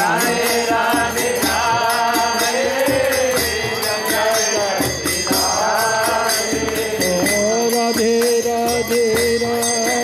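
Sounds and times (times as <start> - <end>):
group chanting a mantra: 0.0 - 7.7
percussion steady beat: 0.0 - 10.0.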